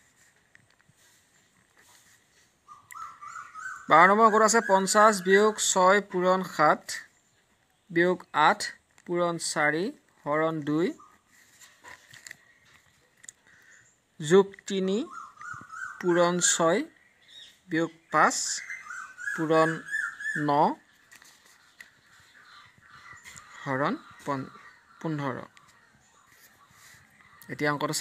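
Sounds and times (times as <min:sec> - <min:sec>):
man speaking: 0:03.9 - 0:07.1, 0:07.9 - 0:11.1, 0:14.2 - 0:15.2, 0:16.0 - 0:17.0, 0:17.7 - 0:18.7, 0:19.4 - 0:20.9, 0:23.5 - 0:25.6, 0:27.4 - 0:28.0.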